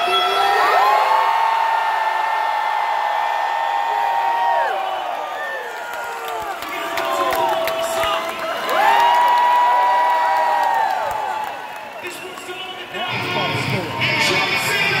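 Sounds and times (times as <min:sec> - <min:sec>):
crowd cheering and whooping: 0:00.0 - 0:15.0
rock band with guitars and drums: 0:13.1 - 0:15.0.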